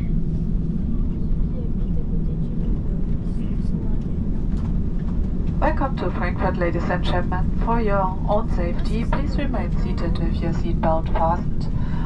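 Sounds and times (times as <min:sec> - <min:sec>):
airliner cabin rumble: 0:00.0 - 0:12.0
faint passenger chatter: 0:00.0 - 0:12.0.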